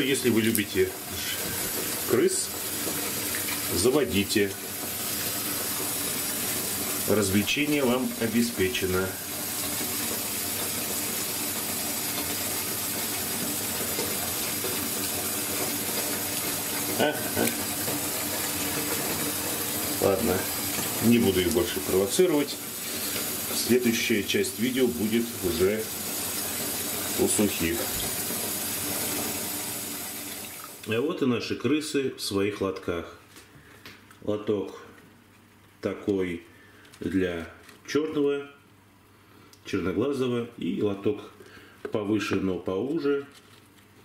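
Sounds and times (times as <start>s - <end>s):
water running in a bathtub: 0.0s - 31.0s.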